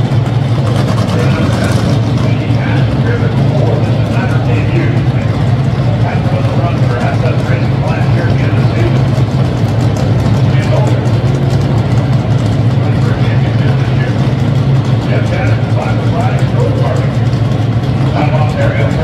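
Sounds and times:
car engines idling: 0.0 - 19.0.

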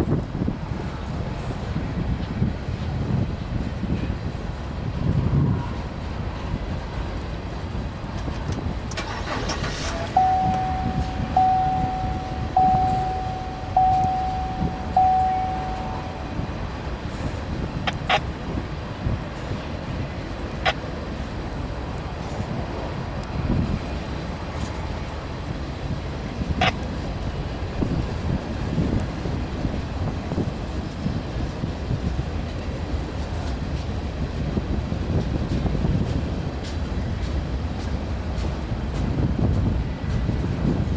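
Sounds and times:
train wheels rumbling on rail: 0.0 - 40.9
ringing tone: 10.1 - 16.6.

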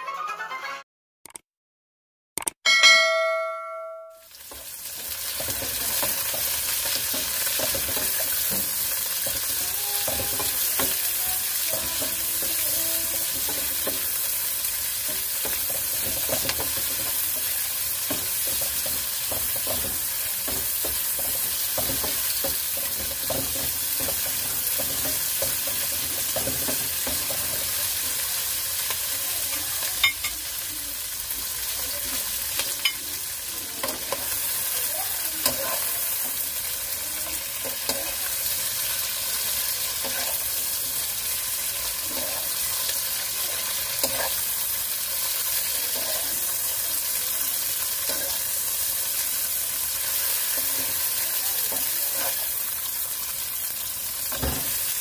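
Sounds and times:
vegetables sizzling in a pan: 4.2 - 55.0.

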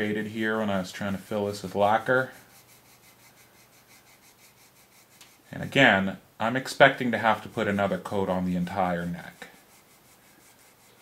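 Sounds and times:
sandpaper rubbing on wood: 0.8 - 5.5, 6.9 - 11.0.

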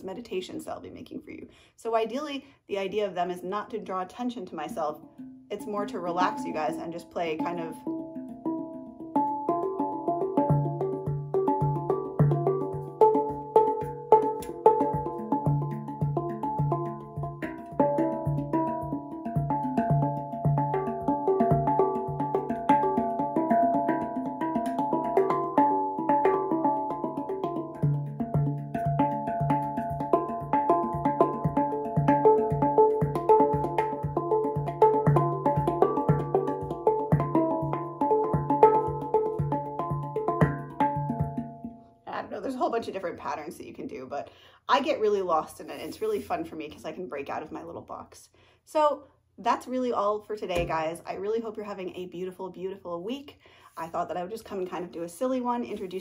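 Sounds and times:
steel handpan notes: 5.0 - 41.9.

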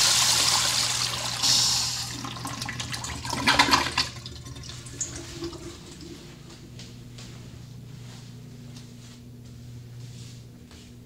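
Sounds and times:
toilet flush water rushing: 0.0 - 6.2
steady low hum: 1.4 - 11.0.

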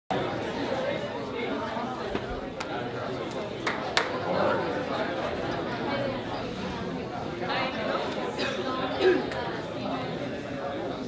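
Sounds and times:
indistinct chatter of voices: 0.1 - 11.0.

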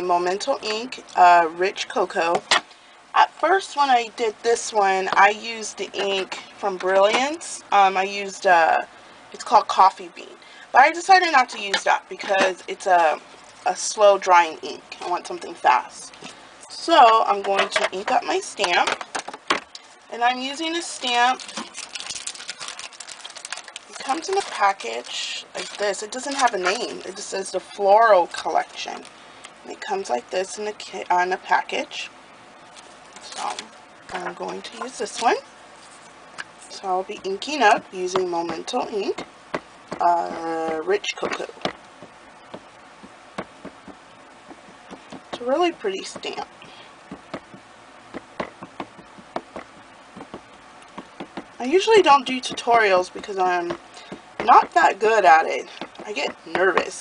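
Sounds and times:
plastic package clicks and crinkles: 21.3 - 26.5.

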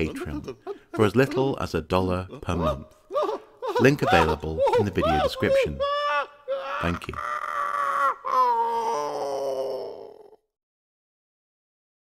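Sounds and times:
person wailing scream: 2.6 - 10.4.

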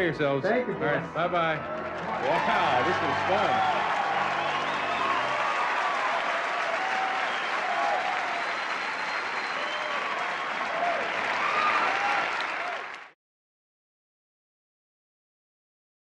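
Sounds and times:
audience applauding: 1.5 - 13.2.

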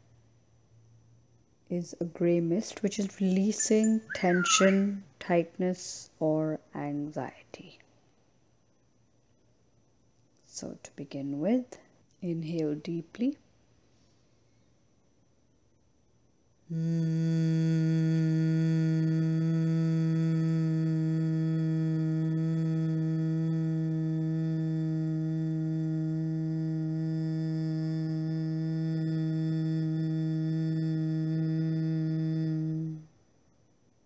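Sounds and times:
woman humming low note: 3.0 - 5.0, 16.7 - 33.1.

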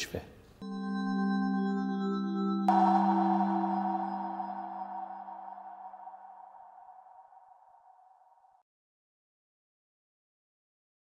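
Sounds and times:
high shimmering ring: 0.6 - 8.3
low held tone: 0.6 - 8.4.

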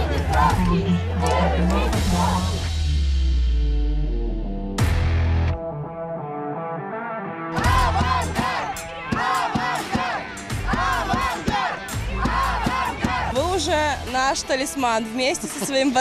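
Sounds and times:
fans chanting in unison: 0.0 - 2.7, 7.6 - 13.4
background music: 0.0 - 16.0.

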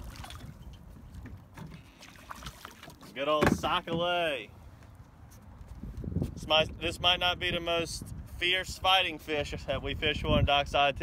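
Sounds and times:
low rumble aboard boat: 0.0 - 11.0.

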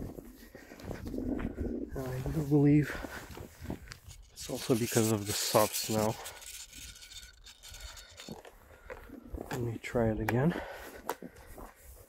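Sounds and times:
footsteps crunching in snow: 0.0 - 6.4.

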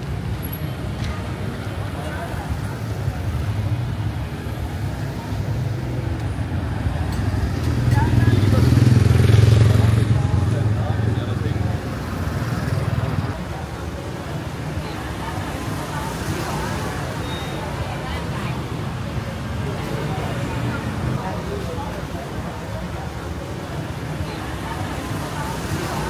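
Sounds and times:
busy street traffic: 0.0 - 26.0
voices of passers-by: 0.0 - 26.0.

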